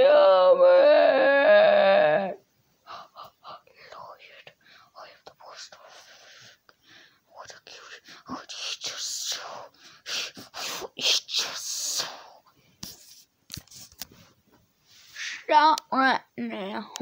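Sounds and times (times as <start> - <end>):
person whispering: 2.9 - 6.6, 7.3 - 9.8, 10.4 - 12.4.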